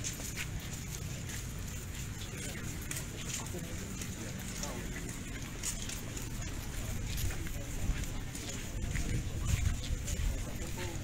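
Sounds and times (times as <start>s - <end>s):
footsteps on pavement: 0.0s - 11.0s
indistinct voices: 0.0s - 11.0s.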